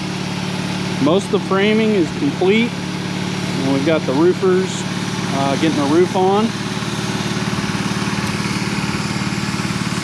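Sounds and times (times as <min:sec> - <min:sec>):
small gasoline engine running: 0:00.0 - 0:10.0.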